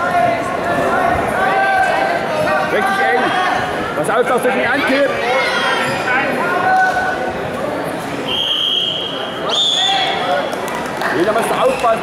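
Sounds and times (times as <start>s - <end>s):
voices shouting in hall: 0.0s - 3.9s, 4.5s - 7.3s, 8.2s - 10.6s
shrill referee whistle blast: 8.3s - 10.1s.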